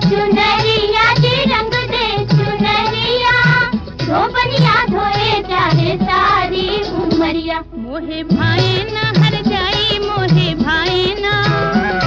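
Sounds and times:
steady drum beat: 0:00.0 - 0:07.5, 0:08.2 - 0:12.0.

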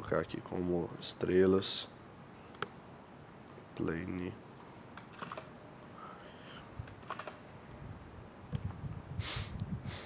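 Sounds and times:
computer keyboard keystrokes: 0:05.0 - 0:05.5, 0:06.9 - 0:07.4.

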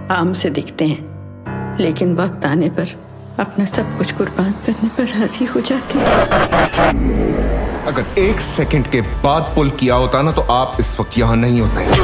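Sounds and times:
jet aircraft roaring past: 0:05.8 - 0:08.5.

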